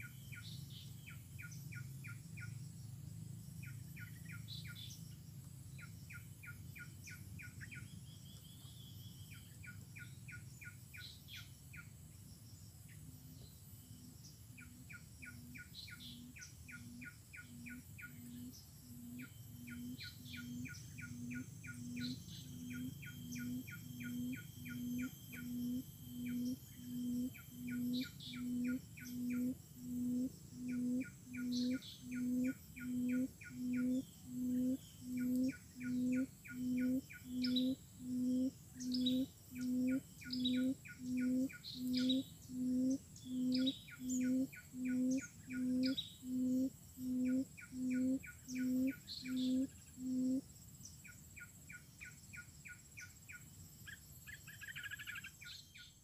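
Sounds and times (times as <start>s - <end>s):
low steady background hum: 0.0s - 56.0s
quail low hooting: 14.6s - 50.5s.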